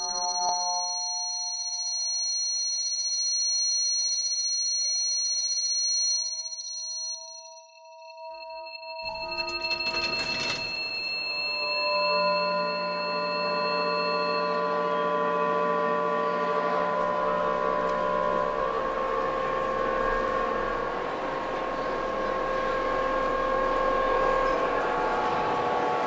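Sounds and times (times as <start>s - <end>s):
shopping centre ambience: 0.0s - 7.5s, 9.1s - 26.0s
drone of steady tones: 0.0s - 26.0s.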